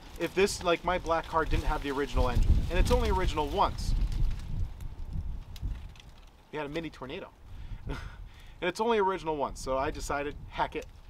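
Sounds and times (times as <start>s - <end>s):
wind buffeting microphone: 0.7s - 6.3s, 7.4s - 8.6s, 9.4s - 11.0s.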